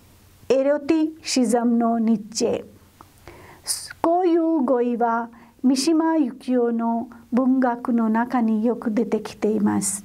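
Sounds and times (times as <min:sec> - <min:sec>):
woman lecturing: 0:00.5 - 0:02.8, 0:03.7 - 0:10.0.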